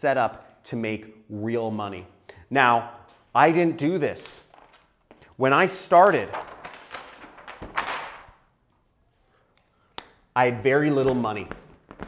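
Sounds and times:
paper sheet rustling: 4.4 - 5.2, 5.9 - 8.4.

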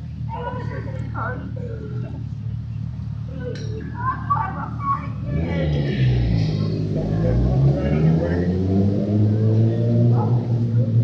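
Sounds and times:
vehicle engine accelerating: 0.0 - 11.0.

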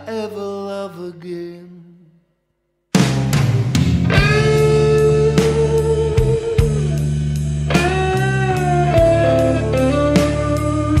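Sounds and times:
person singing slow blues: 0.0 - 2.3, 3.6 - 11.0
backing chord: 4.0 - 11.0.

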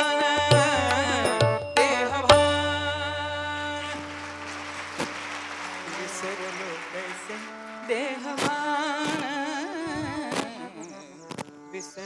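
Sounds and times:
singing with instruments: 0.0 - 12.0
audience applauding: 3.6 - 8.4.

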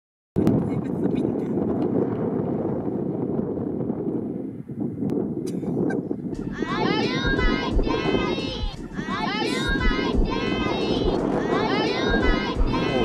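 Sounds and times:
low rumbling outdoor noise: 6.2 - 13.0.

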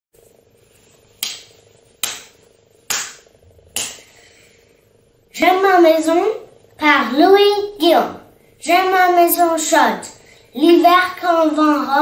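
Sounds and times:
faint steady hum: 0.2 - 12.0
sharp percussive hits: 1.2 - 4.1.

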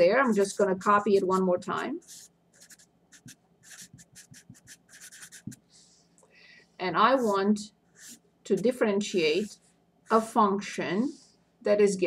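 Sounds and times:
pen writing on paper: 0.3 - 5.6, 8.0 - 8.2.

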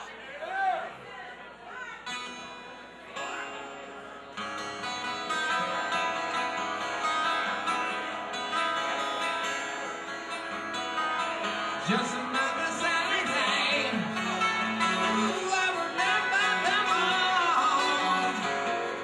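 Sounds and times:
strummed acoustic guitar chords: 2.0 - 19.0
live rock band: 2.2 - 19.0.

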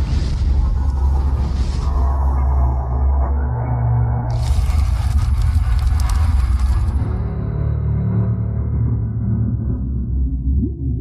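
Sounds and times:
deep bass drone music: 0.0 - 11.0
crackling and clicking: 4.3 - 7.2.

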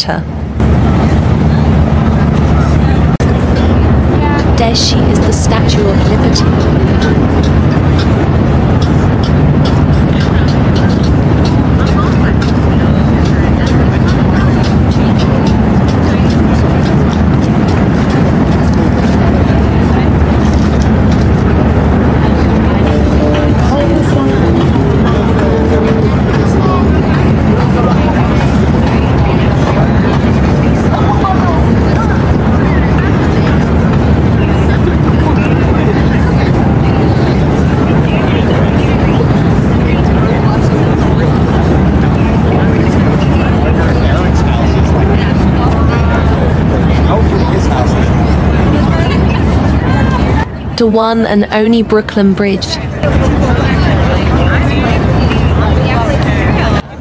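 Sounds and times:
continuous low rumble: 0.0 - 57.0
people talking indistinctly: 0.0 - 57.0.

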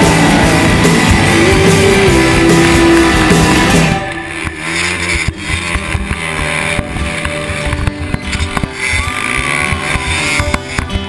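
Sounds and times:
dirt bike engine revving: 0.0 - 11.0
music playing: 0.0 - 11.0.

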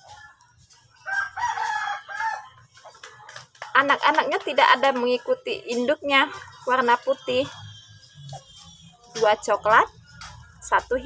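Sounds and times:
rooster crowing: 1.0 - 2.5.

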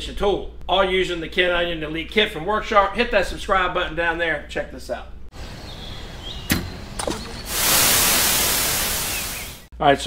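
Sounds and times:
hiss: 7.4 - 9.7
loud rushing noise: 7.5 - 9.7.

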